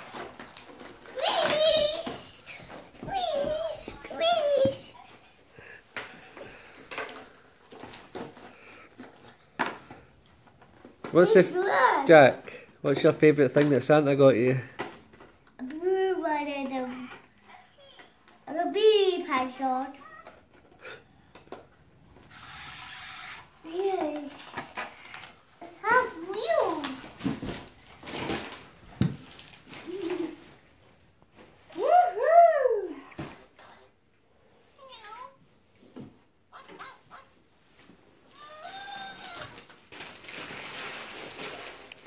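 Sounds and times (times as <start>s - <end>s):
toddler vocalising: 22.3s - 23.6s, 38.3s - 39.6s.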